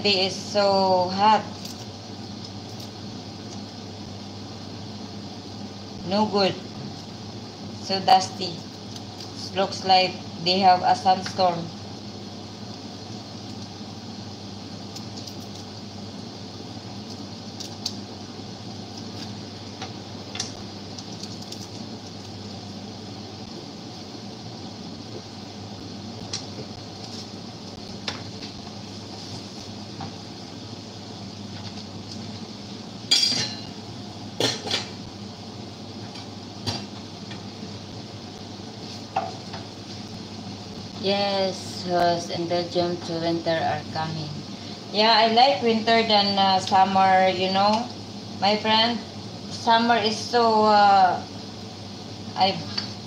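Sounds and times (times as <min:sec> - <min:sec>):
steady background hum: 0:00.0 - 0:53.0
pots and utensils clinking: 0:33.1 - 0:33.7.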